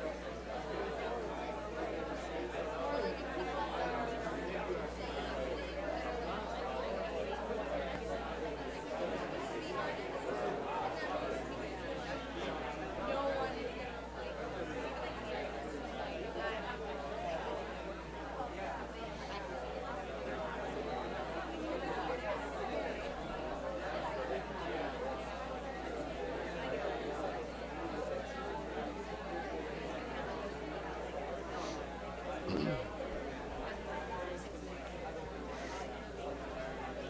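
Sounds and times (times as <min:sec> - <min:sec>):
crowd conversation chatter: 0:00.0 - 0:37.0
many people talking: 0:00.0 - 0:37.0.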